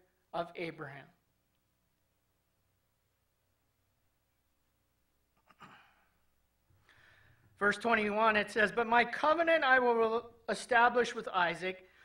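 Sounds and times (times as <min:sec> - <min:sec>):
man breathing softly: 0:05.7 - 0:07.6.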